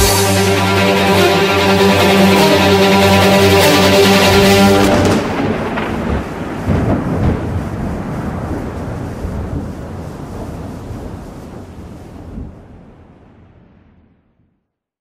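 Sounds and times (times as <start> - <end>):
rumbling thunder: 4.3 - 13.6.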